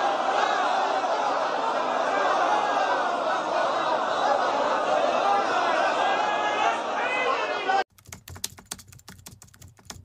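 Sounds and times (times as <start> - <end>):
keyboard keystroke clicks: 7.9 - 10.0.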